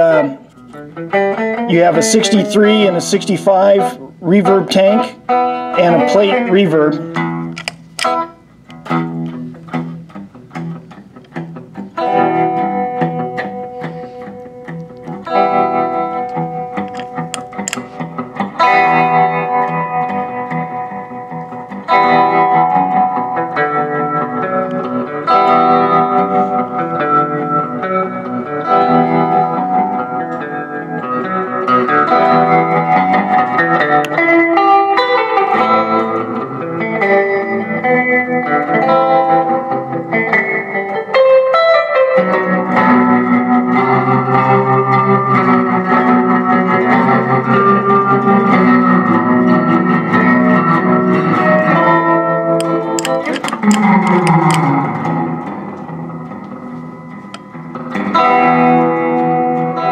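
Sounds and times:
electric guitar with tremolo and reverb: 0.0s - 59.9s.

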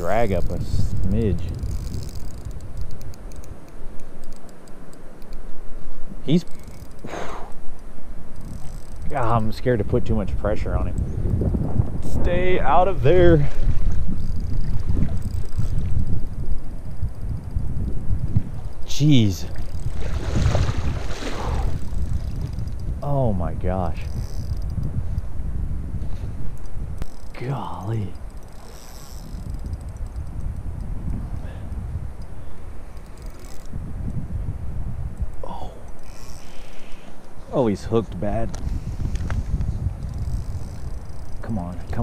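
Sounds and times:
wind buffeting microphone: 0.0s - 42.0s
faint rapid ticking: 6.3s - 11.6s, 26.5s - 32.3s.

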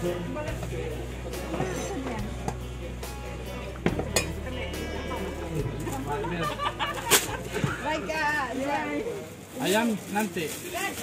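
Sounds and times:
background music: 0.0s - 8.8s.

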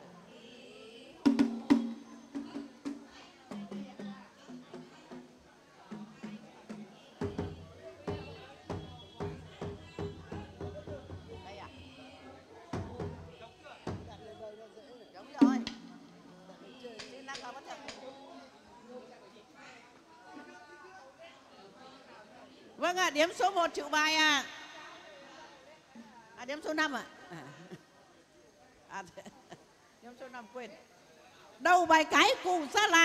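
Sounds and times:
large drum beats: 6.0s - 12.1s, 12.7s - 14.2s, 15.4s - 16.2s.

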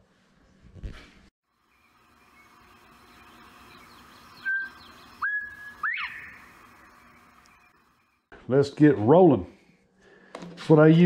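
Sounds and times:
whistled notes: 3.7s - 6.5s.

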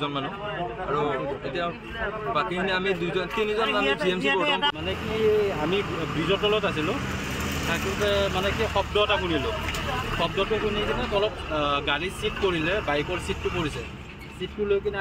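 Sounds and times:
men talking: 0.0s - 15.0s
vehicle engine humming: 4.6s - 15.0s.

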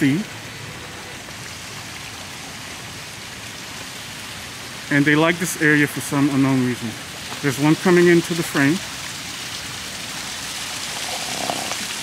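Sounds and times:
rushing water hiss: 0.0s - 12.0s.

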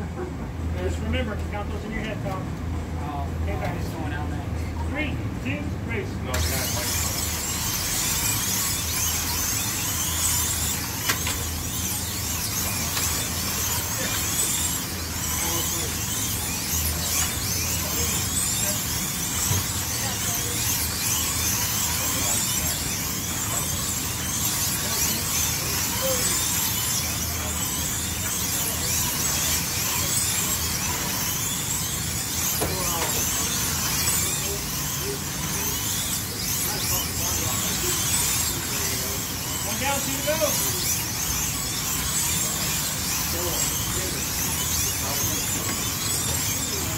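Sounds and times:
slot car electric motors whining: 0.0s - 46.9s.

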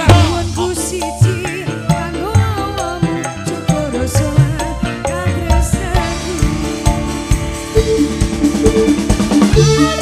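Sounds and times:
drum kit beats: 0.0s - 10.0s
live band playing: 0.0s - 10.0s.

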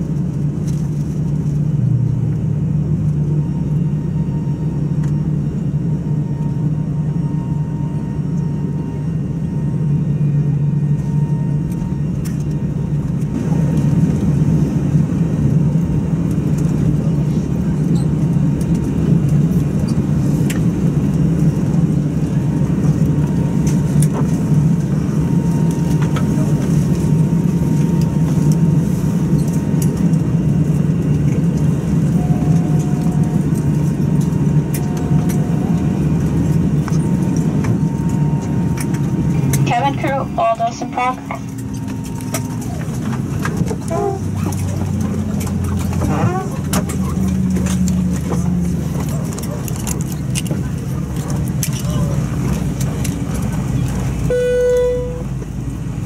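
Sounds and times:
jet engines idling rumble: 0.0s - 56.0s
thin steady whine: 23.0s - 44.2s.

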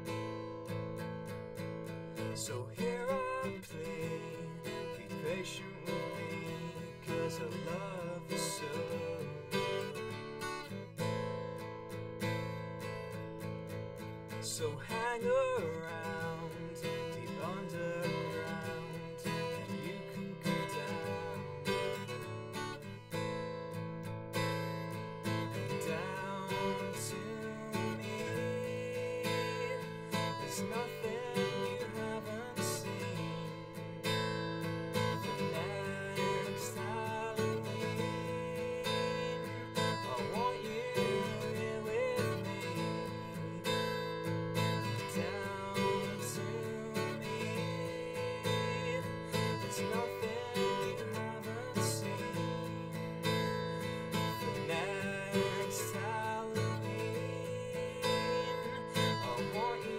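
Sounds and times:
acoustic guitar strummed: 0.0s - 59.9s
man singing: 2.1s - 11.1s, 14.3s - 23.2s, 24.4s - 59.9s.

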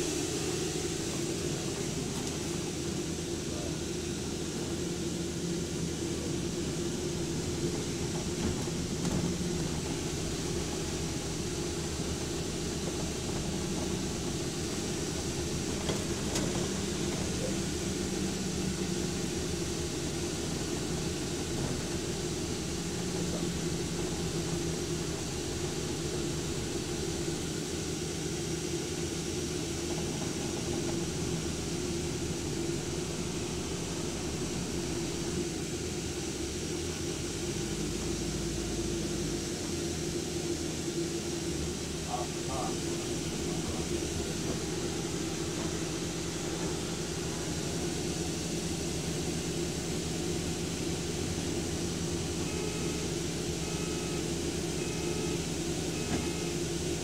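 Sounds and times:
bus engine hum: 0.0s - 57.0s.

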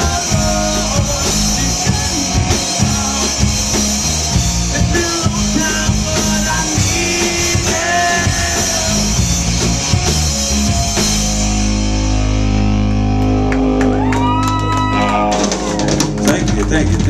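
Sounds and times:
rock band playing: 0.0s - 17.0s
people clapping: 13.2s - 17.0s.

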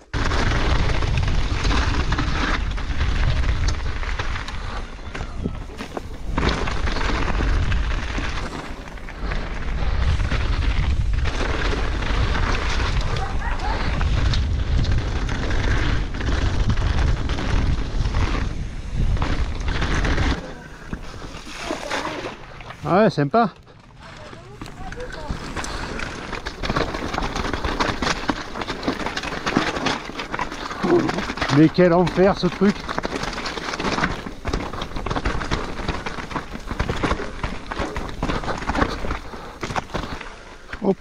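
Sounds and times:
wind rumble on microphone: 0.0s - 21.4s
bike tyres on trail: 0.0s - 41.0s.

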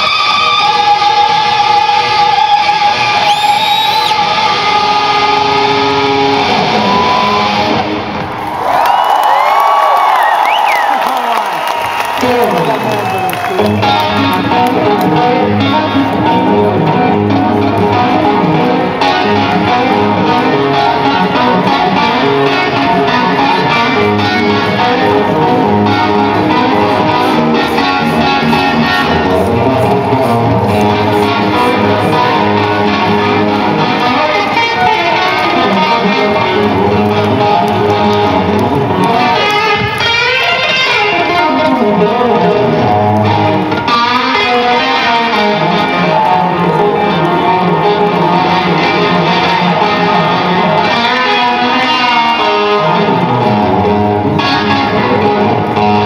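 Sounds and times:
electric guitar solo: 0.0s - 56.0s.

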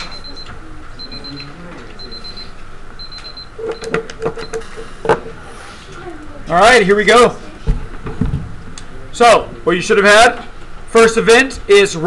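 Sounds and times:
classroom chatter: 0.0s - 2.9s, 4.6s - 9.6s
timer short high beeps: 0.0s - 4.7s.

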